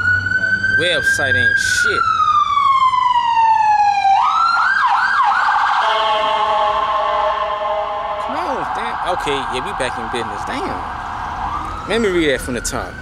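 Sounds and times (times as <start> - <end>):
emergency vehicle siren: 0.0 - 13.0.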